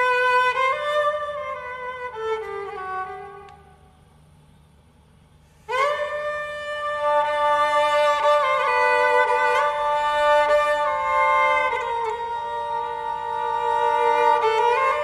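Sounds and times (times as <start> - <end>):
bowed lyra notes: 0.0 - 3.8, 5.6 - 15.0.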